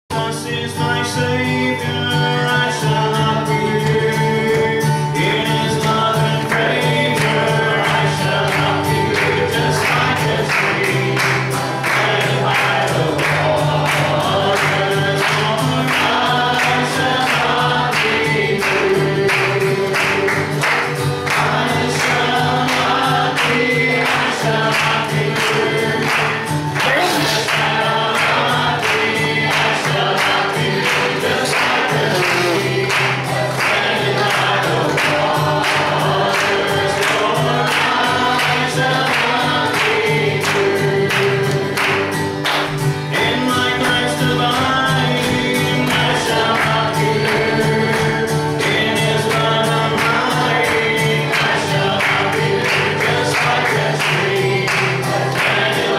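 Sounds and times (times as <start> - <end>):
person singing gospel: 0.1 - 55.9
strummed acoustic guitar: 0.1 - 55.9
sharp rhythmic strikes: 2.5 - 55.9.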